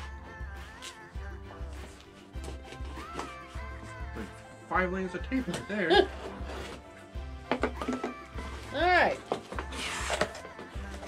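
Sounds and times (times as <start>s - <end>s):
cardboard rustling scrape: 6.2s - 7.0s, 8.4s - 11.0s.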